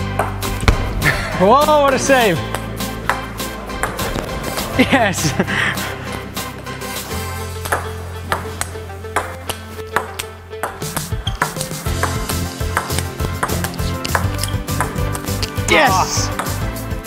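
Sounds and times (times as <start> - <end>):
background music with beat: 0.0 - 17.0.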